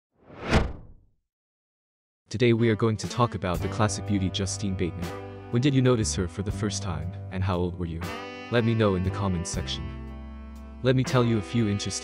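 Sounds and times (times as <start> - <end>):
whoosh: 0.2 - 1.0.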